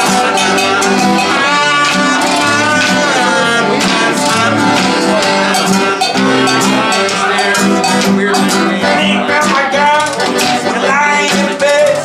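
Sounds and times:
cowbell struck by stick: 0.0s - 10.7s
accordion chords: 0.0s - 12.0s
strummed acoustic guitar: 0.0s - 12.0s.

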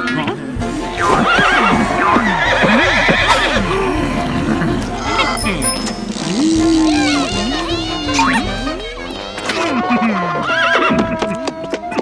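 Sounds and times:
cartoon horse whinnying: 1.0s - 5.4s, 6.0s - 11.6s.

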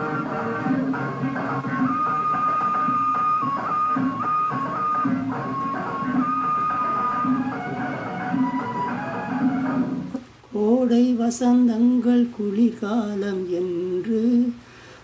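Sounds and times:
instrumental music with held notes: 0.0s - 10.2s.

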